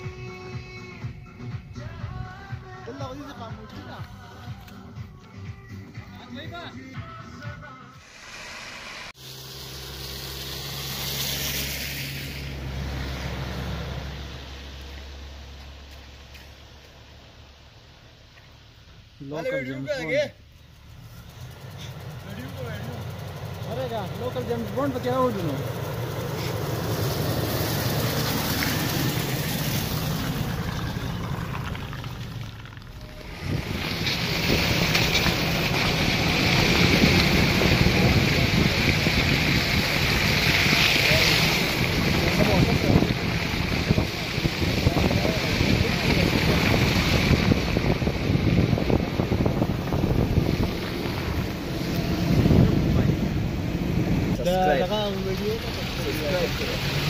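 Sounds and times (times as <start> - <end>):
suv engine running: 0.0 - 57.0
tyres churning through slush: 21.1 - 57.0
wind rushing on microphone: 33.2 - 54.8.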